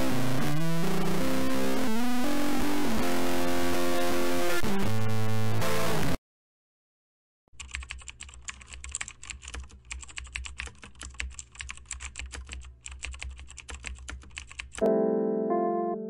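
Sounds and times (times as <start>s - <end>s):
typing on computer keyboard: 7.6s - 14.9s.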